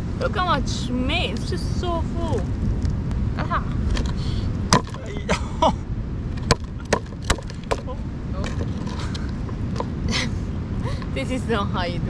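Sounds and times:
rock knocking on crab shell: 4.7 - 5.0, 6.4 - 8.7.

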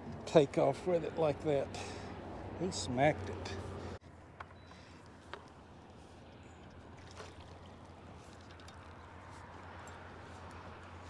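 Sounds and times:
water splashing and trickling: 4.9 - 11.0.

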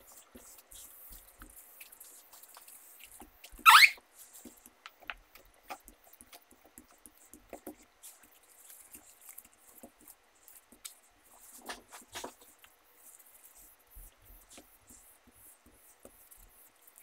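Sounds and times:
rising squeak: 3.7 - 4.0
cloth rubbing laptop screen: 7.1 - 17.0.

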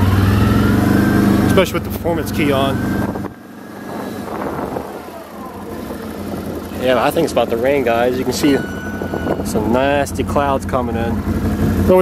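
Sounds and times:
atv engine running low: 0.0 - 12.0.

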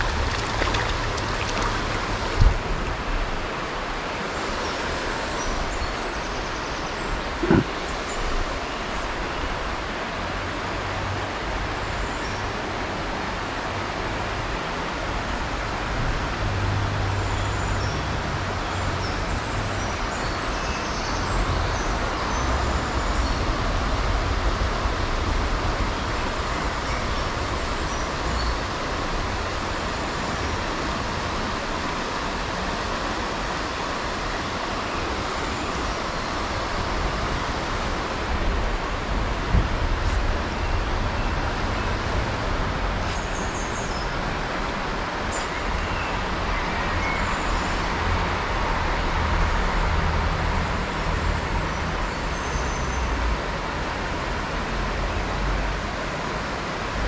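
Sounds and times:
river water rushing: 0.0 - 57.0.

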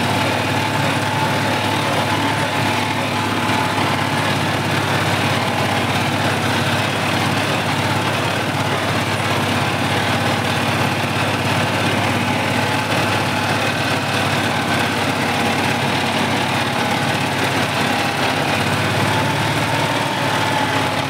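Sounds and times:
tractor diesel engine running: 0.0 - 21.0.

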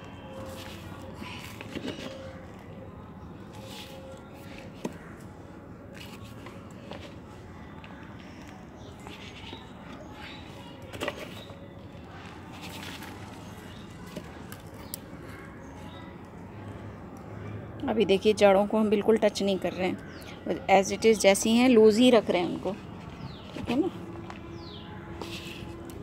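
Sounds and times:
potting mix crunching and rustling: 0.4 - 2.6, 10.3 - 15.4.

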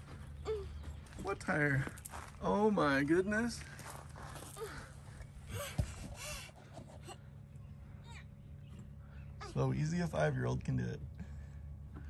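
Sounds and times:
child straining sounds: 4.4 - 4.9.

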